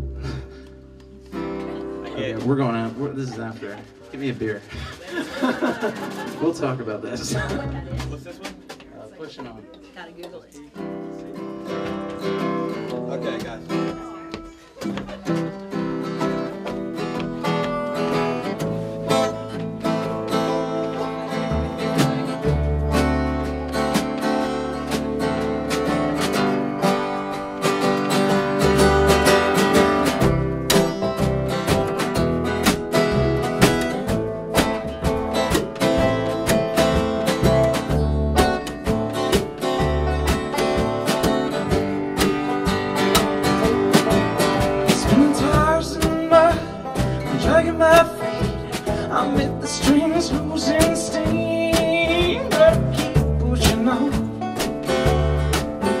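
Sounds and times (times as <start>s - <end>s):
upright bass low notes: 0.0s - 4.0s, 6.4s - 8.4s, 15.7s - 56.0s
banjo: 0.0s - 9.9s, 10.7s - 56.0s
strummed acoustic guitar: 0.0s - 56.0s.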